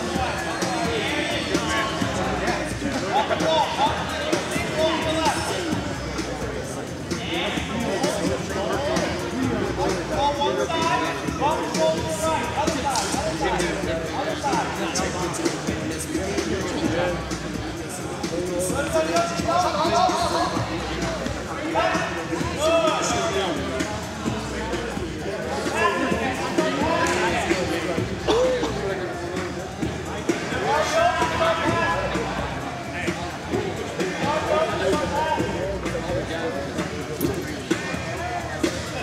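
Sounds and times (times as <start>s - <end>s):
background hubbub: 0.0s - 39.0s
background music: 0.0s - 39.0s
voices calling out and talking: 0.0s - 39.0s.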